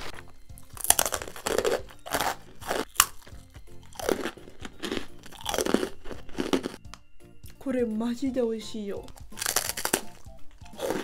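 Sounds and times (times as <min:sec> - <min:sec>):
rice cracker crunching: 0:00.0 - 0:06.8, 0:09.1 - 0:11.0.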